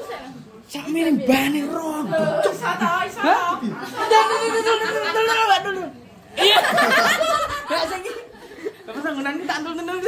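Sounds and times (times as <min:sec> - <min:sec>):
women laughing: 0:02.1 - 0:05.7, 0:06.4 - 0:09.2.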